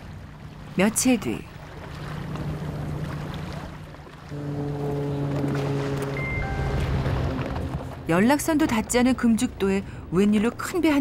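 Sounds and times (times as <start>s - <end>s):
motor boat engine running: 0.0s - 10.7s
sustained chord of steady tones: 4.3s - 7.4s.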